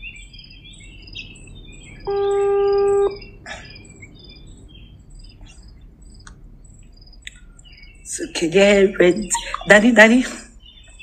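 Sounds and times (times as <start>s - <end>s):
birds chirping: 0.0s - 11.0s
loud steady beep: 2.1s - 3.2s.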